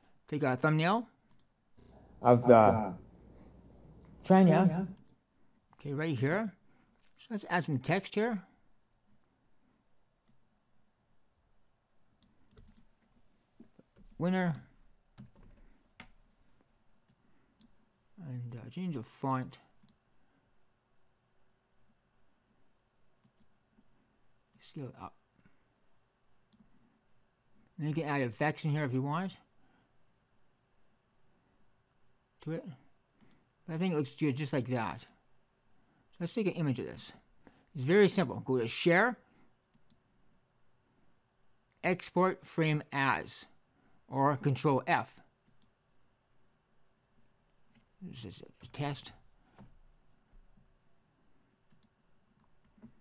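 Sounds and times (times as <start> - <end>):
computer mouse clicks: 1.2 - 1.5, 10.2 - 10.4, 12.2 - 16.2, 17.0 - 17.8, 19.7 - 20.0, 23.2 - 23.6, 26.5 - 26.8, 33.2 - 33.5, 39.6 - 40.0, 45.4 - 45.8, 49.5 - 49.8, 51.7 - 53.0
computer keyboard keystrokes: 12.2 - 12.9, 15.2 - 16.2.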